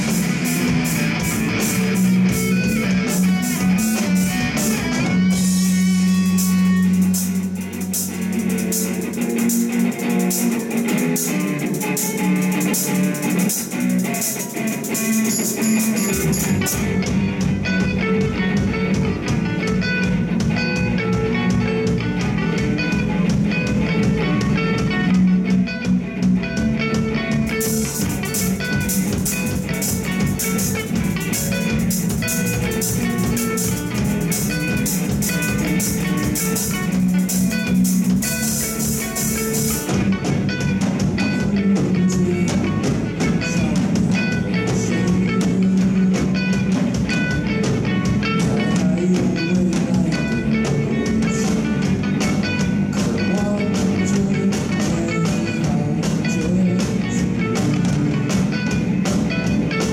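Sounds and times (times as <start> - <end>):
rock band playing: 0.0 - 59.9.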